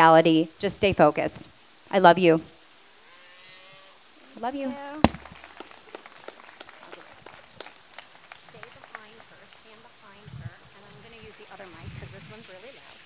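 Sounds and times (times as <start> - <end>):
microphone handling bumps: 5.0 - 5.4.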